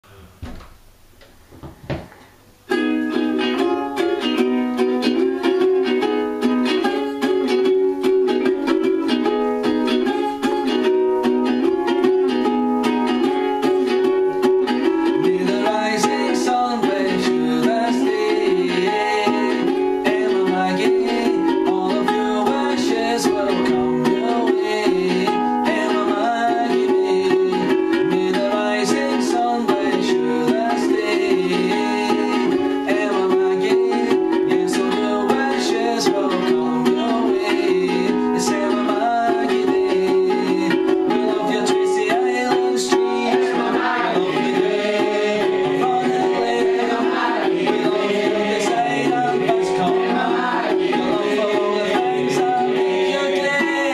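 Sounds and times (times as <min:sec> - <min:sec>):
ukulele strumming: 0:00.0 - 0:53.9.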